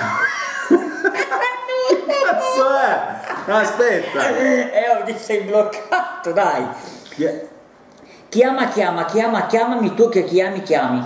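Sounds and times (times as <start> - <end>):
men laughing: 0.0 - 4.8, 5.7 - 6.4.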